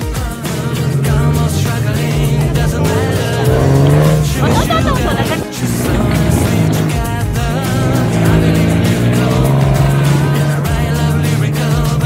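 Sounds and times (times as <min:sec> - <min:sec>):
music: 0:00.0 - 0:12.0
vehicle engine running: 0:00.0 - 0:12.0.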